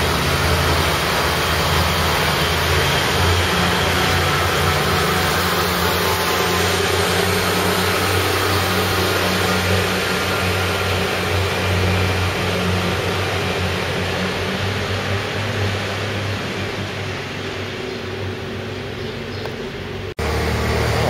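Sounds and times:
diesel train engine drone: 0.0s - 21.0s.

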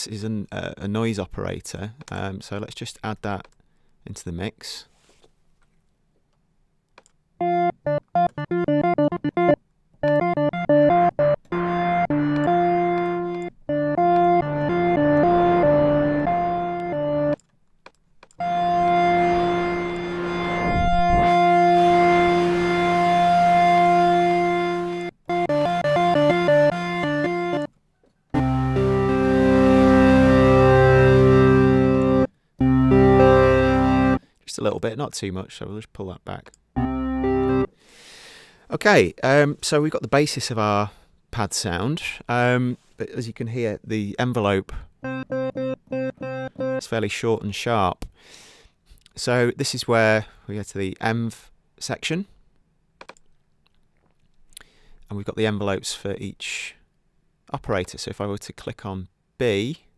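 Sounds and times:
synth pad notes and chords: 7.4s - 17.4s, 18.4s - 27.7s, 28.4s - 34.2s, 36.8s - 37.7s, 45.0s - 47.0s.

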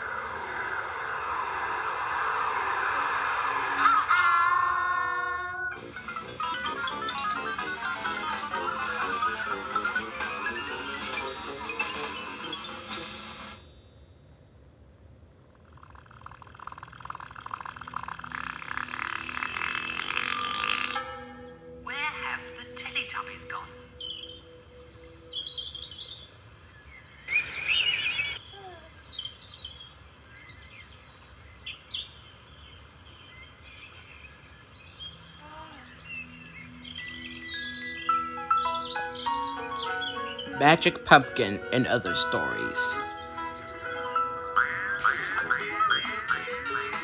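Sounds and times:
baby giggling: 5.7s - 10.1s, 44.6s - 46.6s
bird chirps: 23.0s - 41.1s.

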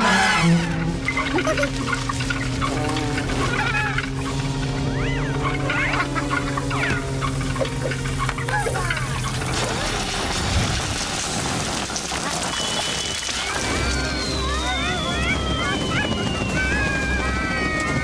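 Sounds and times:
high sliding gibberish voices: 0.0s - 9.9s
cartoon background music: 0.0s - 10.0s, 13.4s - 18.0s.

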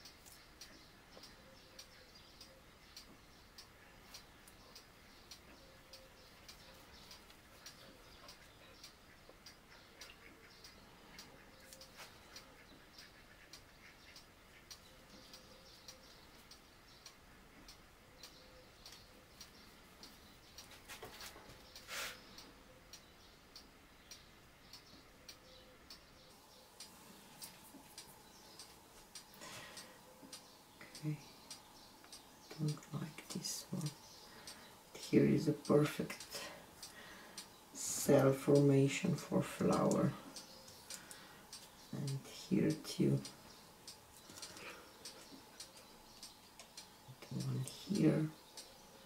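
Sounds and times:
soft ticking: 0.0s - 49.0s.

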